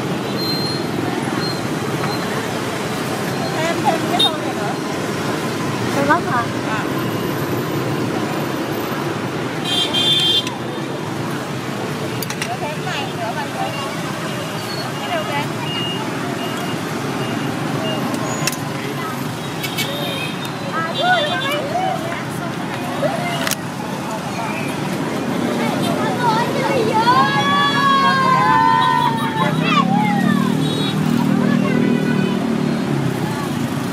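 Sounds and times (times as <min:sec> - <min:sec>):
street traffic noise: 0:00.0 - 0:33.9
vehicle horn toot: 0:09.6 - 0:10.5.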